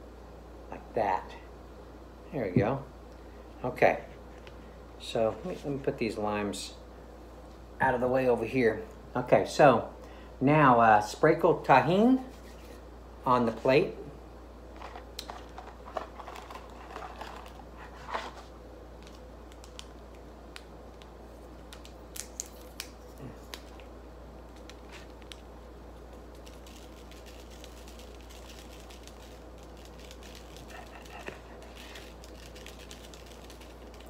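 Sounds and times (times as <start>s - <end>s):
steady low hum: 0.0s - 34.0s
packet crinkling: 14.8s - 34.0s.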